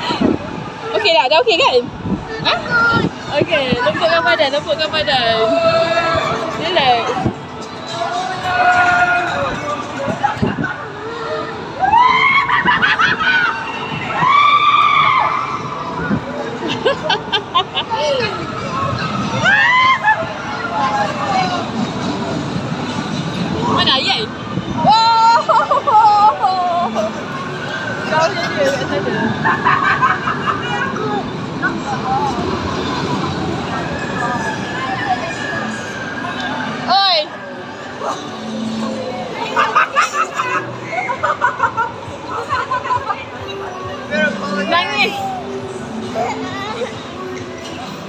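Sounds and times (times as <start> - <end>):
crowd noise: 0.0 - 48.0
many voices in a hall: 0.0 - 48.0
ride rumbling: 0.0 - 48.0.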